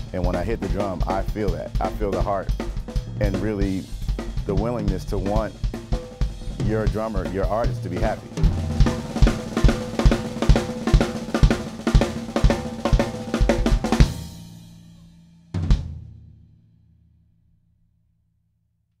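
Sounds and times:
drum and cymbals ringing out: 0.0s - 16.1s
drum kit groove: 0.0s - 16.3s.

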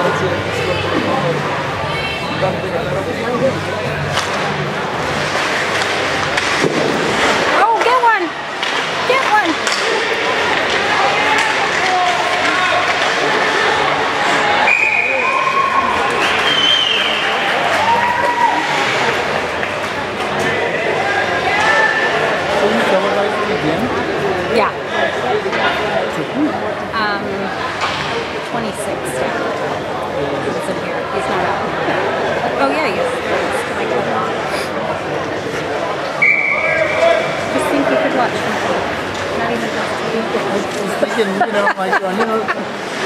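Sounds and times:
spectators talking and calling out: 0.0s - 43.0s
sharp knocks of hockey play: 8.6s - 13.6s
shrill referee whistle: 14.7s - 17.3s, 36.2s - 37.0s.

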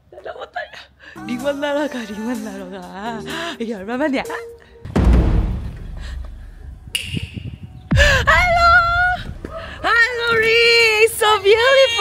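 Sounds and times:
low wind rumble: 5.0s - 12.0s.

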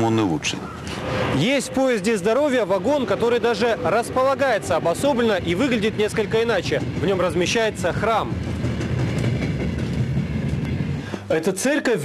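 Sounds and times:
parked train rumbling: 0.0s - 11.8s.

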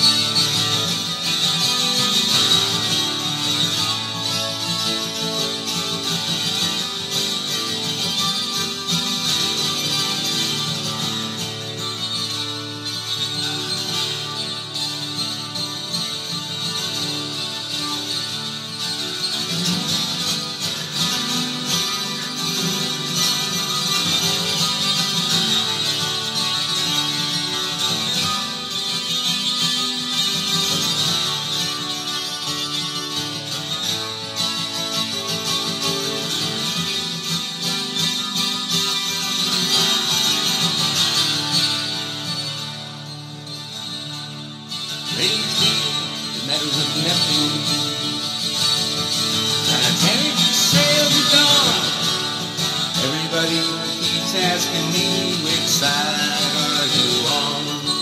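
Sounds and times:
acoustic guitar playing folk: 0.0s - 58.0s.

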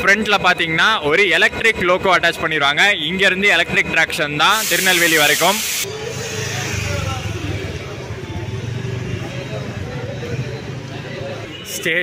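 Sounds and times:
people chattering: 0.0s - 12.0s
traffic engine rumble: 5.8s - 12.0s.

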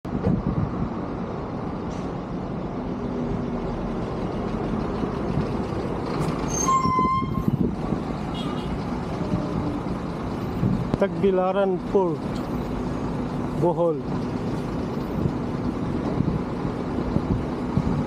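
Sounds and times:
truck diesel engine driving past: 1.1s - 18.0s.

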